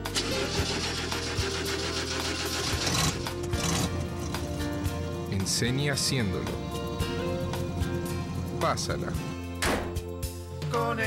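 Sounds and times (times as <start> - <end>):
car engine idling: 0.0 - 9.6.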